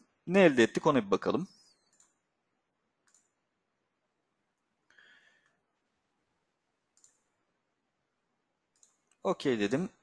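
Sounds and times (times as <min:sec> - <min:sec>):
faint mouse click: 0:03.0 - 0:03.4, 0:07.0 - 0:07.2.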